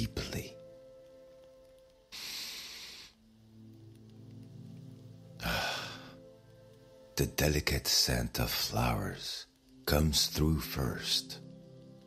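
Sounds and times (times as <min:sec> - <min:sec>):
soft background music: 0:00.0 - 0:12.0
person breathing deeply: 0:02.1 - 0:03.2, 0:05.4 - 0:06.2.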